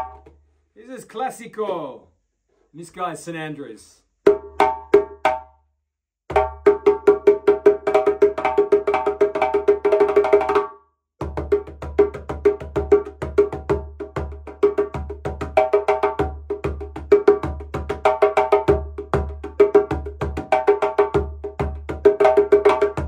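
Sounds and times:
djembe played with hands: 4.3s - 5.5s, 6.3s - 23.0s.

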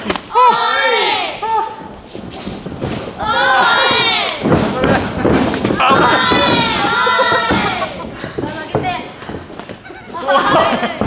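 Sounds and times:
boxing knocks and thuds: 3.8s - 9.9s.

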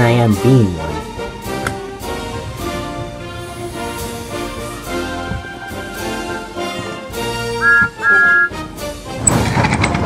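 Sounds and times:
orchestral background music: 0.0s - 9.6s
steam engine whistle toots: 7.5s - 8.6s.

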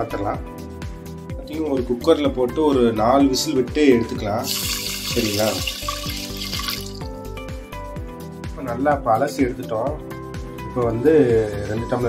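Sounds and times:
background music with beat: 0.0s - 12.0s
water pouring onto lentils: 4.2s - 7.1s.

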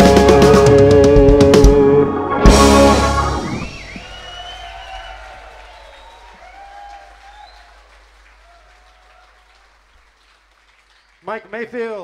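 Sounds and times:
audience applauding: 3.5s - 12.0s.

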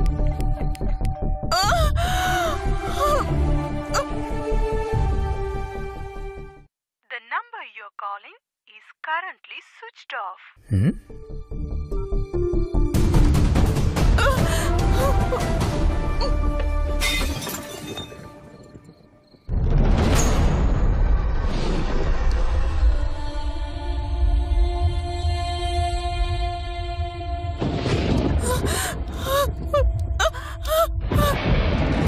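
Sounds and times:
tense film music: 0.0s - 6.7s, 11.1s - 17.2s, 18.2s - 32.0s
glass shattering: 17.0s - 18.4s
low rumble: 19.5s - 25.3s.

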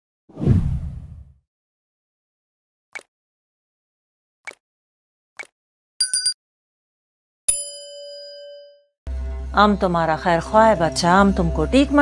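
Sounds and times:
whoosh with deep rumble: 0.4s - 1.3s.

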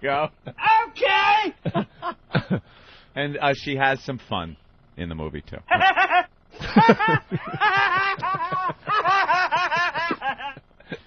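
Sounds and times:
person laughing: 1.6s - 2.6s, 5.7s - 11.0s.

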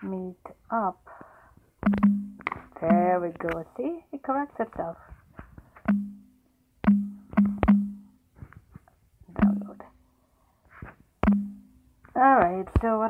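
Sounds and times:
taps on phone screen: 1.8s - 3.6s, 5.8s - 8.1s, 9.4s - 9.8s, 11.2s - 11.8s.

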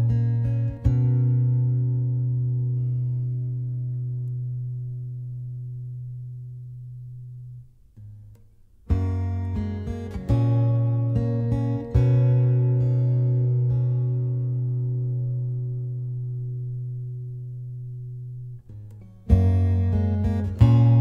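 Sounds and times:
acoustic guitar chords: 0.0s - 21.0s.

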